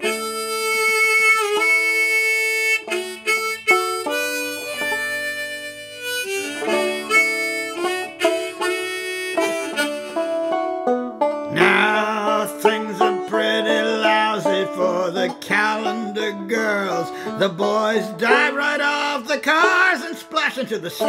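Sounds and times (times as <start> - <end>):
banjo picking: 0.0 - 21.0
harmonica melody: 0.0 - 21.0.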